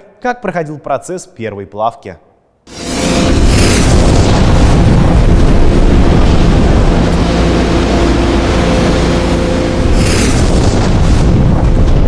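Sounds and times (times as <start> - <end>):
machinery humming: 2.7 - 12.0
molten steel pouring: 2.7 - 12.0.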